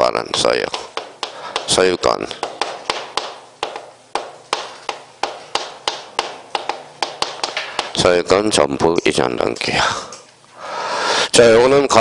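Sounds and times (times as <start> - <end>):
chalk tapping on chalkboard: 0.0 - 8.3.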